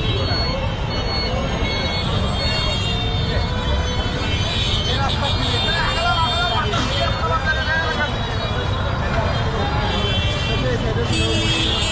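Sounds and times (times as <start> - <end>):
crowd voices: 0.0 - 11.9.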